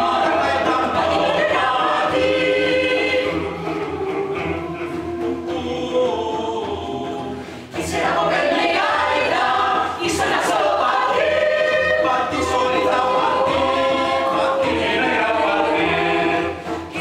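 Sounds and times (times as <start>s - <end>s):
mixed choir singing: 0.0s - 17.0s.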